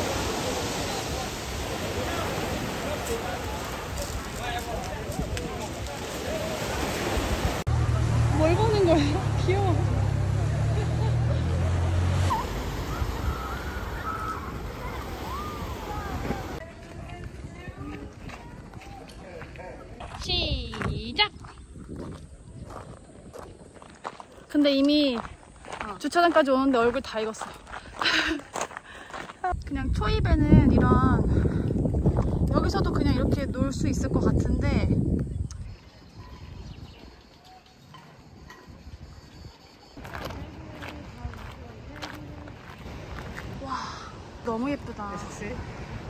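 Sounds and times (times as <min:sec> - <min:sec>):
surf on pebble beach: 0:00.0 - 0:18.2, 0:40.0 - 0:46.0
faint voices: 0:09.1 - 0:20.0
footsteps on gravel: 0:16.6 - 0:29.6, 0:40.0 - 0:43.6.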